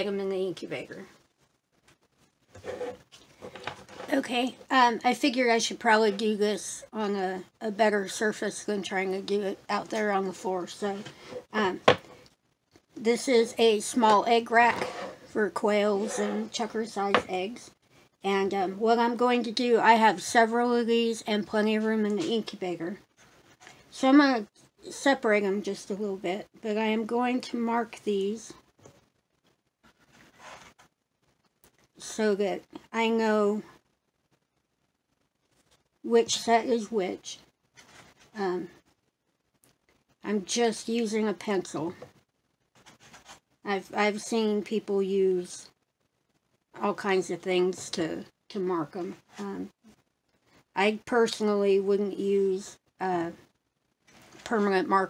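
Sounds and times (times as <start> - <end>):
soft rustle: 22.9 - 24.8, 28.2 - 32.0, 37.4 - 39.0, 41.8 - 43.7, 53.4 - 54.6.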